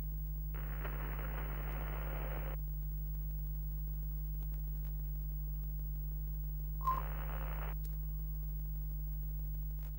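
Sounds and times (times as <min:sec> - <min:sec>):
static hiss: 0:00.0 - 0:04.3, 0:05.1 - 0:09.8
low electrical hum: 0:00.0 - 0:09.9
short beep: 0:06.8 - 0:07.1.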